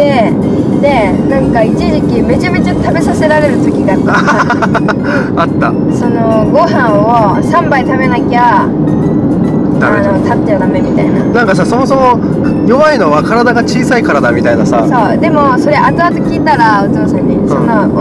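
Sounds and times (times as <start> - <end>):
background music: 0.0 - 18.0
conversation: 0.0 - 18.0.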